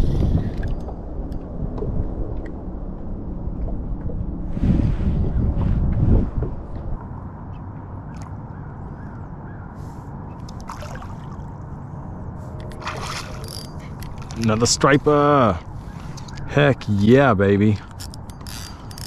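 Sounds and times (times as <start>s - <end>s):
wind rumble on microphone: 0.0s - 17.3s
water sloshing against kayak hull: 10.4s - 11.8s, 12.6s - 14.7s.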